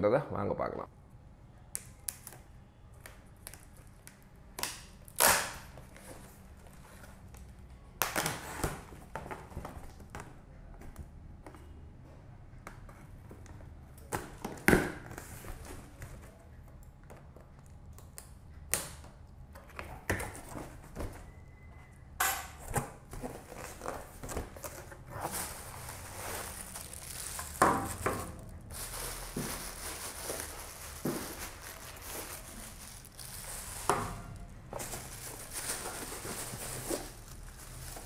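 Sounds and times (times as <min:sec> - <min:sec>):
packing tape ripping off cardboard: 0:04.5 - 0:06.2.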